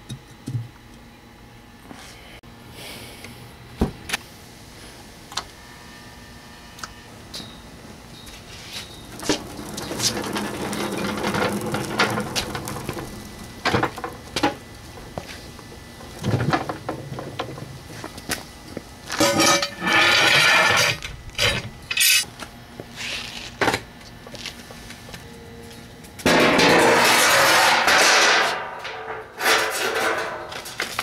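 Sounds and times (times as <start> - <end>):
dolly wheels rolling on concrete: 8.2 - 22.3, 26.2 - 31.0.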